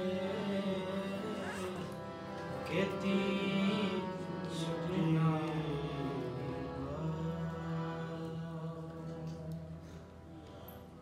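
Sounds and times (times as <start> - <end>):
harmonium sustained chord: 0.0 - 11.0.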